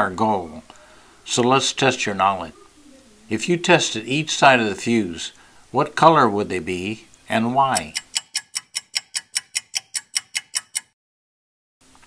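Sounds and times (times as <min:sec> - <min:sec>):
clock ticking: 0:07.6 - 0:11.0.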